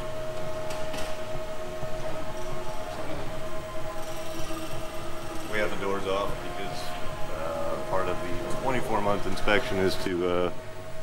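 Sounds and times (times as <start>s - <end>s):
background hum: 0.0s - 11.0s
machine drone with whine: 0.0s - 11.0s.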